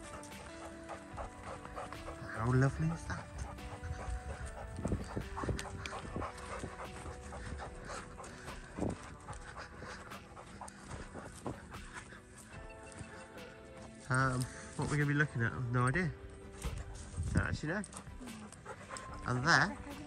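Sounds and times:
background music: 0.0 - 20.0
dog panting: 0.0 - 20.0.

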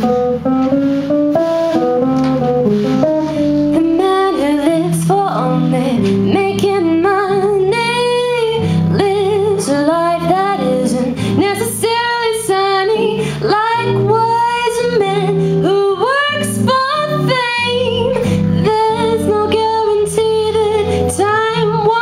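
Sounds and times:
drum kit with cymbal strikes: 0.0 - 4.1
electric guitar: 0.0 - 22.0
woman singing with vibrato: 3.6 - 22.0.

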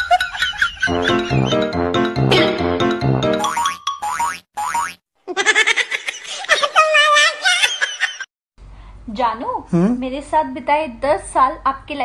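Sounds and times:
bouncy comedy music: 0.0 - 5.0.

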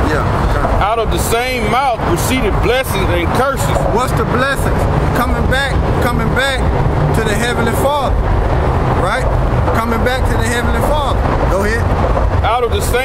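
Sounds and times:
man talking: 0.0 - 8.2, 9.0 - 13.0
steady low rumble: 0.0 - 13.0.

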